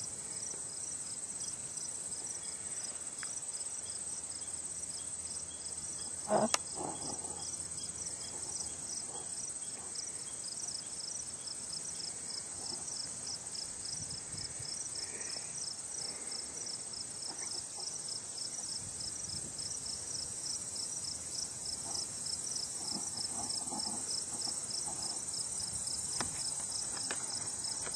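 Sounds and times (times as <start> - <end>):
insects trilling: 0.0 - 27.9.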